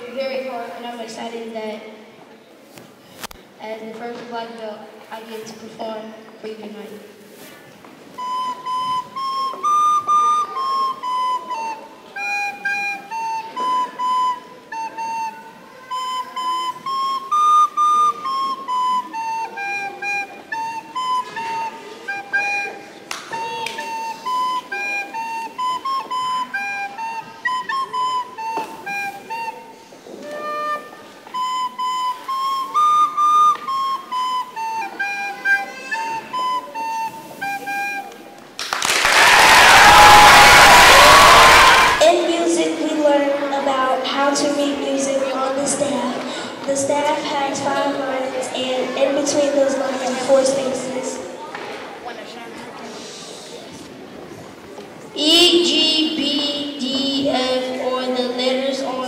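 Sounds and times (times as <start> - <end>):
recorder playing simple tune: 8.1 - 38.6, 39.4 - 51.4.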